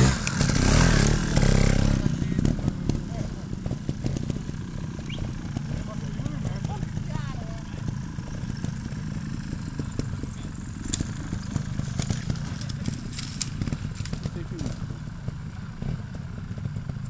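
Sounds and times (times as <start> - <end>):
motorcycle engines at low revs: 0.0 - 17.0.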